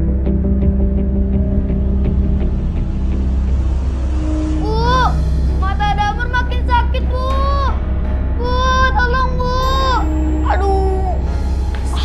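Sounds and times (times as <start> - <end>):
low rumbling music drone: 0.0 - 12.0.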